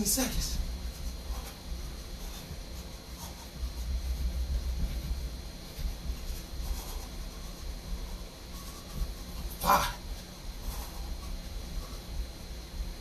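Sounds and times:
footsteps on carpet: 0.3s - 11.0s.

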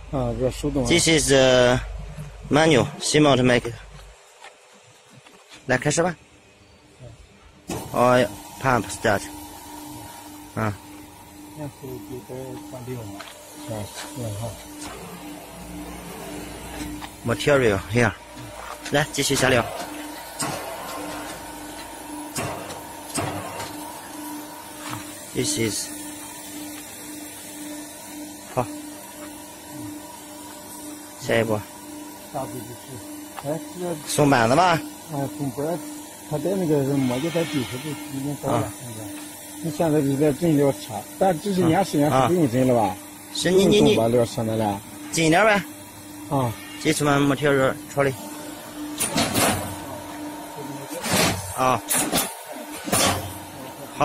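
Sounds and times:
machine hum: 0.0s - 54.0s.

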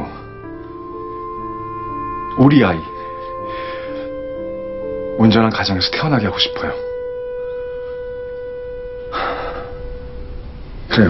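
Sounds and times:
sustained musical note: 0.0s - 11.0s.

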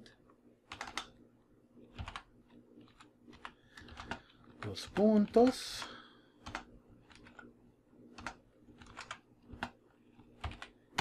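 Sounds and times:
keyboard keystrokes: 0.7s - 1.1s, 1.9s - 7.4s, 8.1s - 11.0s.

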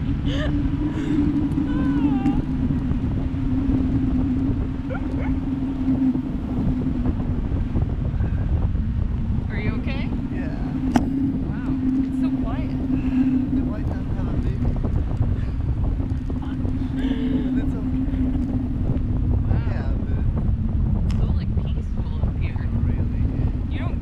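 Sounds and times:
steady low drone: 0.0s - 24.0s
wind rushing over microphone: 0.0s - 24.0s.

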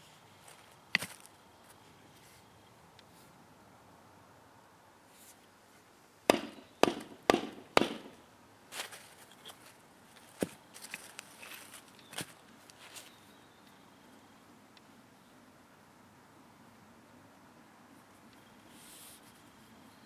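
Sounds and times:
metal baton striking stone: 6.3s - 8.2s.

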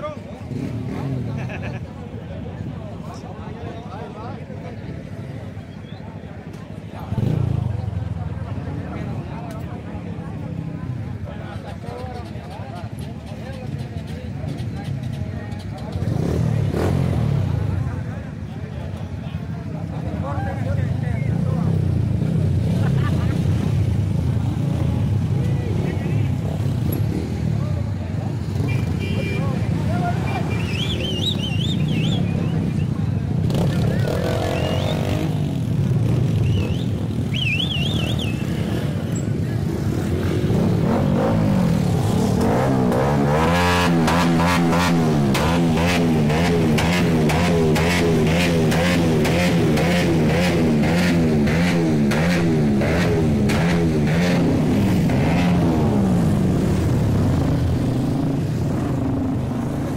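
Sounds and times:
crowd chatter: 0.0s - 59.9s
motorcycle engine revving: 0.4s - 1.7s, 6.9s - 8.5s, 12.8s - 18.4s, 21.3s - 59.9s.

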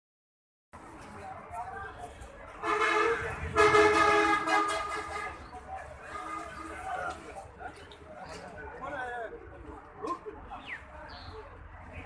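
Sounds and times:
vehicle horn blasts: 2.6s - 5.4s.

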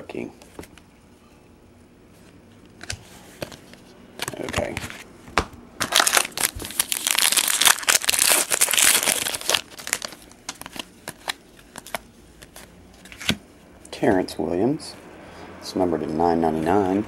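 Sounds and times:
card pack wrapper crinkling: 5.8s - 13.4s.

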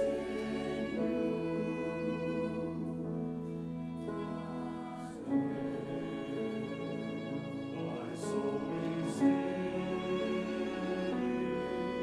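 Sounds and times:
church choir singing: 0.0s - 12.0s
violin accompaniment: 0.0s - 12.0s.

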